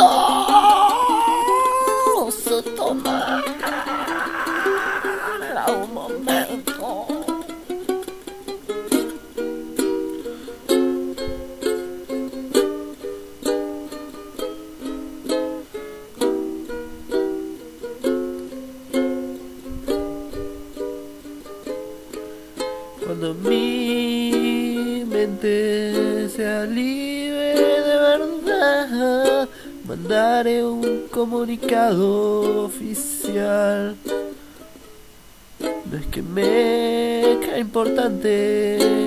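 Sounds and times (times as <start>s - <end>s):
person singing a cry: 0.0s - 7.6s
plucked string instrument strumming: 0.0s - 39.0s.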